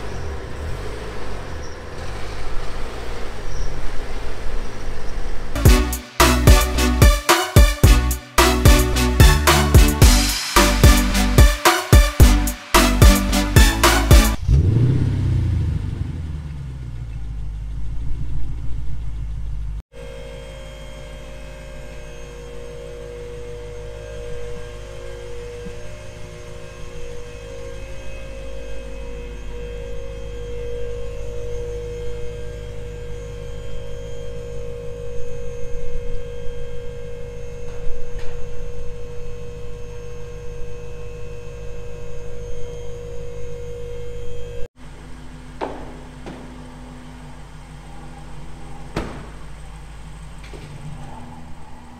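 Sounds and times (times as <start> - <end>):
car engine idling: 0.0 - 7.2, 12.2 - 19.8, 43.5 - 51.9
steady hum: 19.1 - 51.9.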